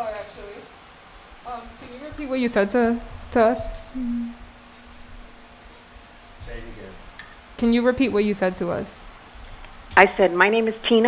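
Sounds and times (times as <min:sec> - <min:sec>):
low pure tone: 0:03.4 - 0:06.7.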